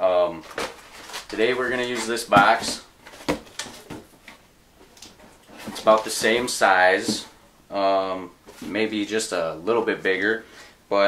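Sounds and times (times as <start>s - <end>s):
cardboard boxes knocking and scraping: 0.4s - 4.3s, 5.1s - 7.4s.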